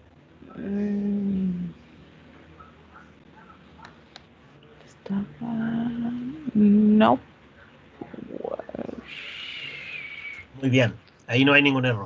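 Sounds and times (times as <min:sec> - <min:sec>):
voices over video call: 0:05.0 - 0:12.0.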